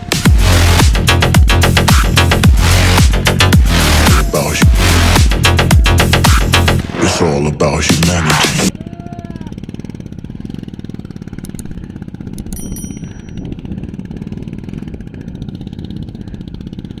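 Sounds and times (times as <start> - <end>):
motorcycle engine idling: 8.7 - 17.0
light metallic clinks: 12.4 - 13.3.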